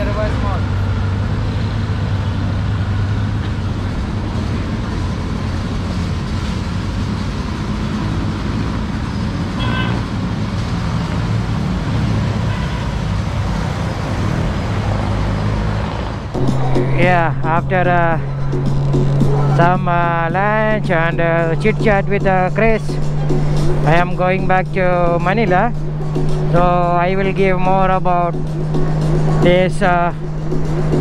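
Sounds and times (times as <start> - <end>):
street traffic: 0.0 - 31.0
music with singing: 16.4 - 31.0.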